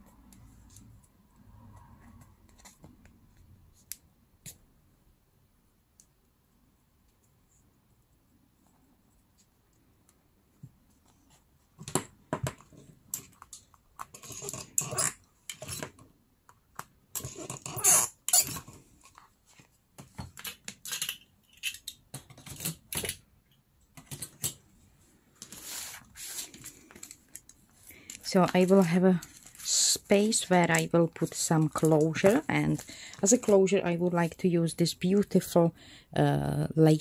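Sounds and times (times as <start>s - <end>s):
paper and card rustling: 25.4s - 34.4s.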